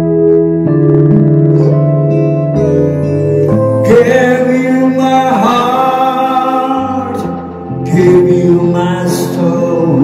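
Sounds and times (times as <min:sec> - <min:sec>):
guitar over held chords: 0:00.0 - 0:10.0.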